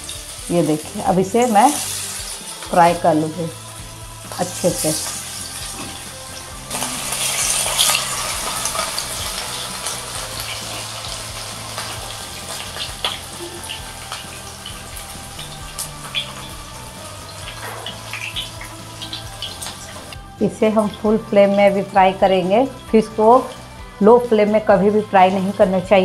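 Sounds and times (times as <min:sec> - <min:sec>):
oil popping and crackling: 0:00.0 - 0:21.7
fish sizzling in oil: 0:00.0 - 0:24.3.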